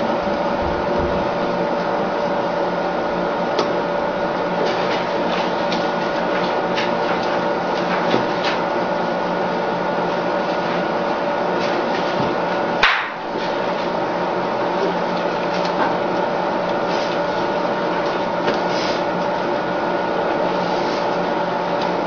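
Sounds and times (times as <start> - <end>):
electrical hum and hiss: 0.0 - 22.0.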